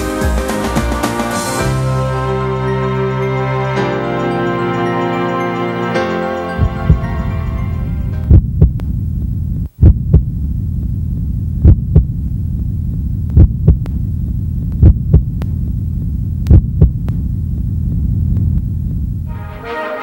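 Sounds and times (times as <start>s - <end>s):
steady low hum: 6.5s - 19.4s
heartbeat thumps: 6.6s - 7.3s, 8.2s - 19.3s.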